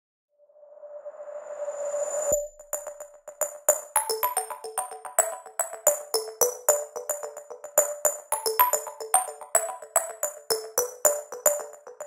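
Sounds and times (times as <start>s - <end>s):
quick electronic beat: 2.7s - 12.0s.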